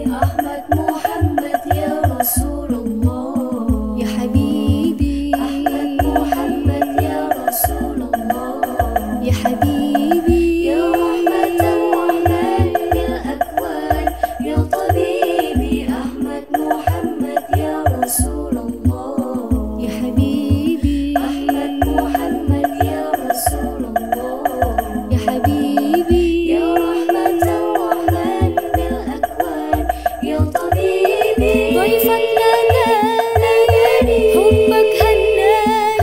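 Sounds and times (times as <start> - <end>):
frame drum beats: 0.0 - 36.0
woman singing: 0.0 - 36.0.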